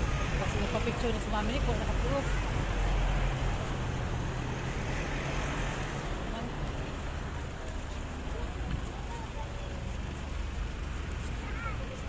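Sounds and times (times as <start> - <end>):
street traffic: 0.0 - 12.0
faint voices of people: 6.2 - 12.0.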